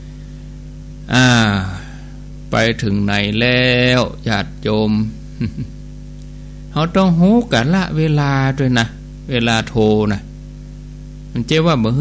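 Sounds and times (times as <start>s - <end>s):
low electrical hum: 0.0s - 12.0s
man speaking: 1.1s - 1.9s, 2.5s - 5.2s, 6.8s - 10.3s, 11.4s - 12.0s.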